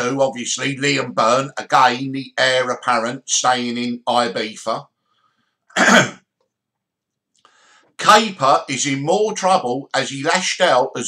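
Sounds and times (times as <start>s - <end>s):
man coughing: 5.7s - 6.2s.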